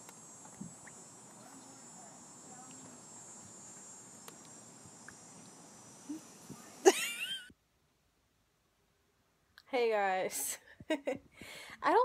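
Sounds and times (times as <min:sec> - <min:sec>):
faint ticks: 0:00.0 - 0:01.8, 0:02.6 - 0:06.6
insects chorus: 0:00.0 - 0:07.5.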